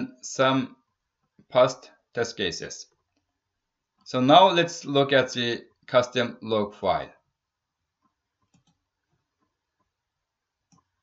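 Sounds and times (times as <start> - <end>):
faint computer mouse clicks: 8.4 - 8.8, 10.7 - 10.9.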